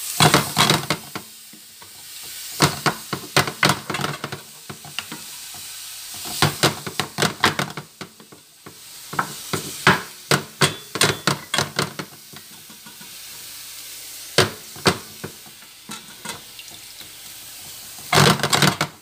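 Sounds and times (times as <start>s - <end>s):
rice sizzling: 0.0s - 19.0s
wooden spatula scraping a pan: 0.2s - 13.2s.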